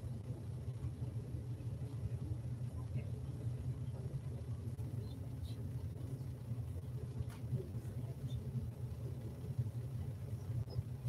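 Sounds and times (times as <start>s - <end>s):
faint small sounds: 0.0s - 11.0s
low room rumble: 0.0s - 11.0s.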